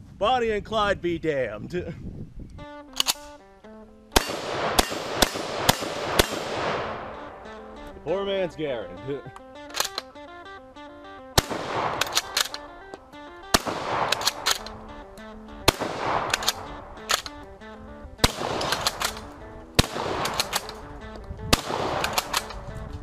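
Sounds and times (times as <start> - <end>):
background music: 2.6 - 23.0
rifle shots echoing: 4.1 - 7.9, 11.2 - 22.8.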